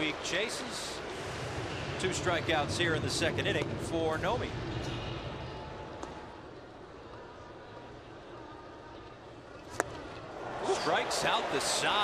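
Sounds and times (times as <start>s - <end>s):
ball popping into mitt: 9.7s - 10.0s.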